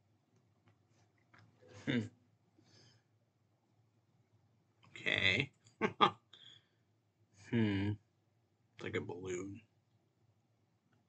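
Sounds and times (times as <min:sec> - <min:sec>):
breath: 0:02.6 - 0:03.1, 0:06.3 - 0:06.9.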